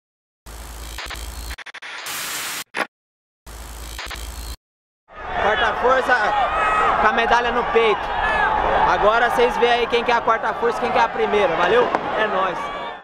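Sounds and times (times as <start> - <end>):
electronic static hiss bursts: 0.5 - 2.9, 3.5 - 4.6
crowd noise: 5.1 - 13.0
man speaking: 8.8 - 12.6.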